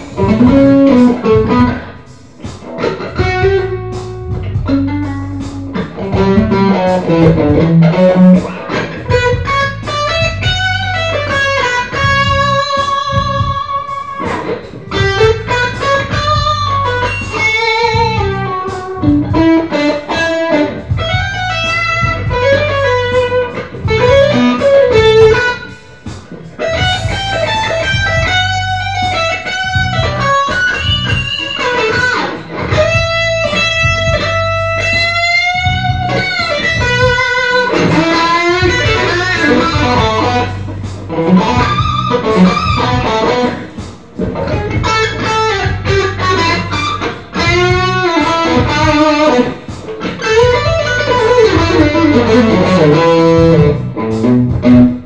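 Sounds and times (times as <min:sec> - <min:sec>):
electric guitar lead melody: 0:00.0 - 0:55.0.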